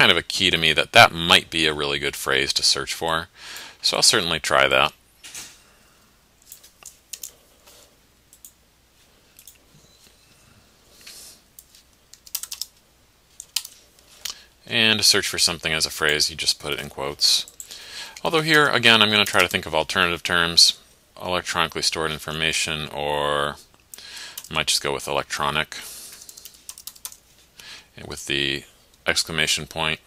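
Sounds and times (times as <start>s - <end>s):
computer keyboard typing: 6.4s - 7.4s, 11.6s - 13.8s, 16.0s - 19.6s, 26.1s - 27.2s.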